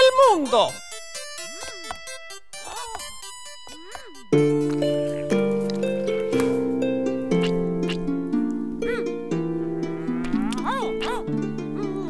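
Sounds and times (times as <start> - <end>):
plucked harp music: 0.0 - 12.0.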